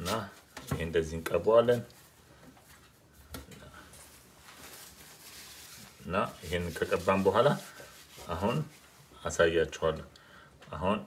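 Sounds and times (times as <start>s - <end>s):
man speaking: 0.0s - 2.0s, 6.0s - 10.1s.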